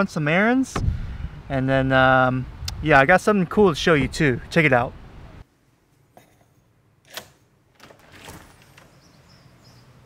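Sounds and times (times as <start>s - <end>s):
door handle and door opening: 7.1s - 9.1s.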